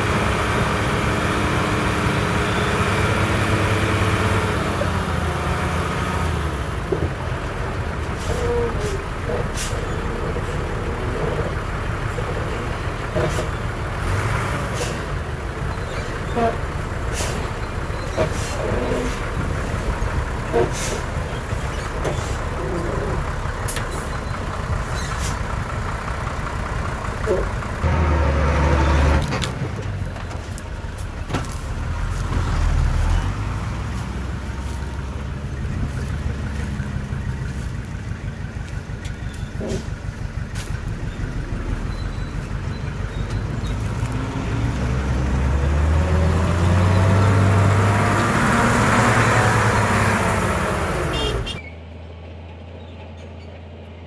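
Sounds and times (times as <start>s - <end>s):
heavy diesel engines running: 0.0s - 54.0s.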